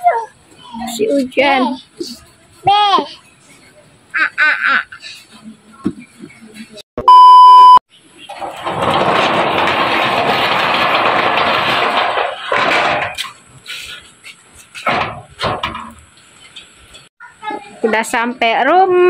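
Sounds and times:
test-tone beep: 0:07.0 - 0:07.8.

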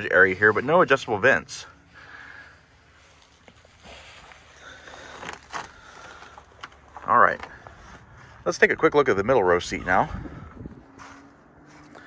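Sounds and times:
light knocks and shuffles: 0:02.9 - 0:08.7, 0:09.7 - 0:12.0.

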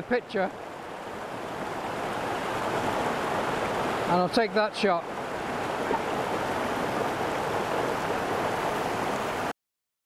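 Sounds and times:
stream rushing over rocks: 0:00.0 - 0:09.5.

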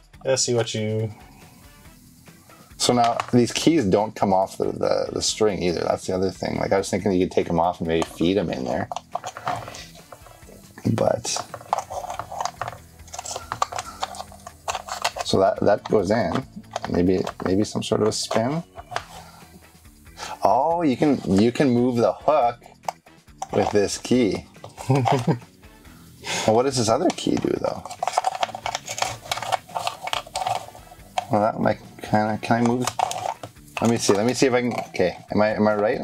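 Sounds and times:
wooden puzzle box clicks and rattles: 0:08.0 - 0:19.1, 0:27.1 - 0:31.4, 0:32.6 - 0:35.0.

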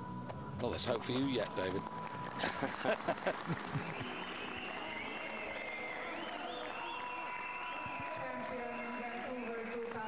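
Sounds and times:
audience applauding: 0:00.6 - 0:10.0.

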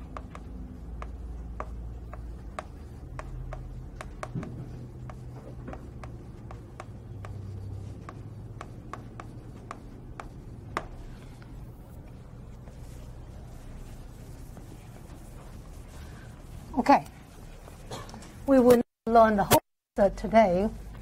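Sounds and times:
pen tapping and scratching paper: 0:00.0 - 0:16.0.

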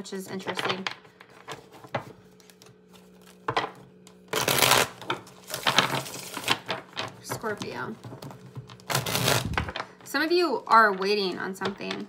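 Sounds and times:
faint steady hum: 0:00.0 - 0:12.0
cards being shuffled: 0:08.2 - 0:10.0.

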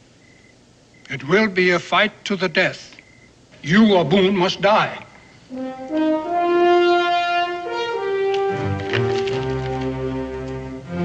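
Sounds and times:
orchestral music with horns and brass: 0:05.5 - 0:11.0.

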